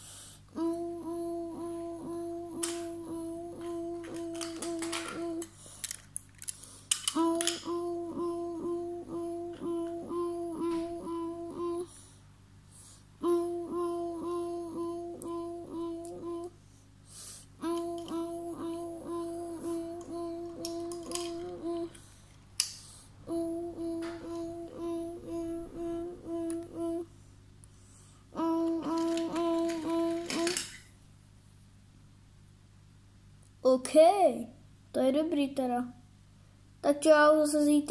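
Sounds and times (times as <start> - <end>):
child humming in pulses: 0.0 - 5.6, 7.1 - 12.0, 13.2 - 16.6, 17.4 - 22.0, 23.2 - 27.2, 28.3 - 30.8.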